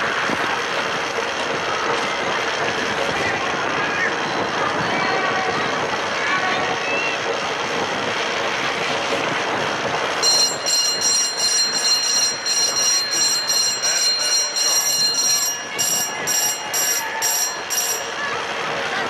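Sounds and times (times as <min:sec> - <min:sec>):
crowd noise: 0:00.0 - 0:19.0
high-pitched bell ringing: 0:10.2 - 0:18.6.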